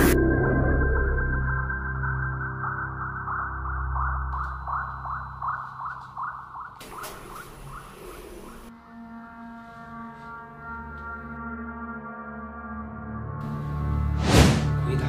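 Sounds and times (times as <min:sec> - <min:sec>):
low electronic drone: 0:00.0 - 0:06.8
noisy whoosh: 0:14.2 - 0:14.8.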